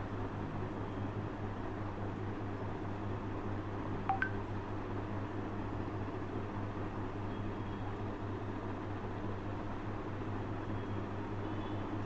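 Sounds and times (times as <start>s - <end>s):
low hum and hiss: 2.8s - 6.1s
short electronic beeps: 4.1s - 4.4s.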